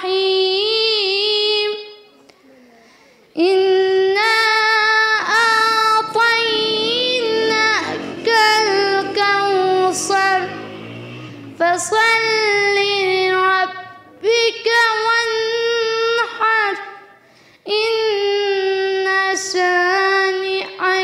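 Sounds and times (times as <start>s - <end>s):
girl chanting melodically: 0.0s - 2.0s, 3.3s - 10.8s, 11.6s - 21.0s
short breaths: 2.4s - 3.4s, 17.2s - 17.7s.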